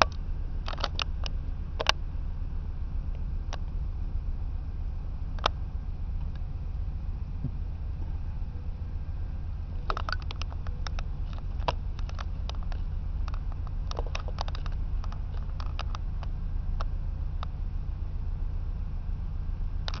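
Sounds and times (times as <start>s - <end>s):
light clicks and ticks: 0.0s - 2.0s, 9.9s - 17.5s
low rumble inside car: 0.0s - 20.0s.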